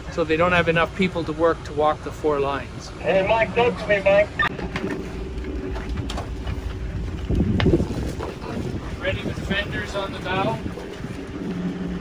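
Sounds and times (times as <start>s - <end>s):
boat engine rumble: 0.0s - 12.0s
wind buffeting microphone: 3.5s - 12.0s.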